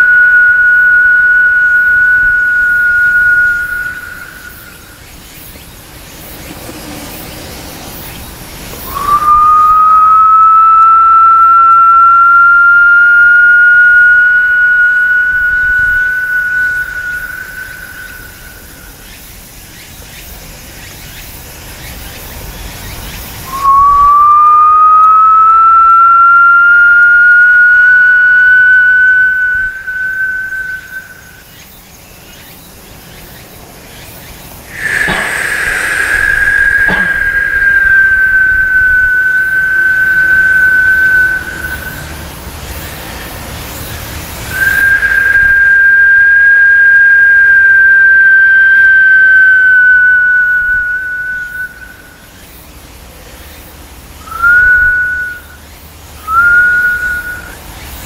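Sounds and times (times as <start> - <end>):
high whistle-like notes: 0.0 - 19.4, 22.9 - 52.6, 54.2 - 58.0.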